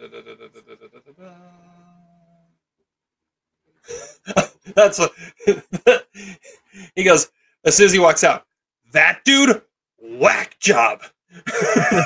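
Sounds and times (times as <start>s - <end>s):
man humming: 0.0s - 2.3s
burst of laughter: 3.9s - 6.5s, 11.4s - 12.0s.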